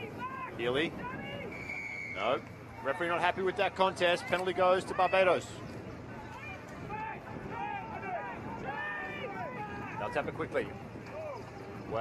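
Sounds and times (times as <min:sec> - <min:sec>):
wind noise on microphone: 0:00.0 - 0:03.5, 0:04.2 - 0:12.0
distant people shouting: 0:06.2 - 0:10.2.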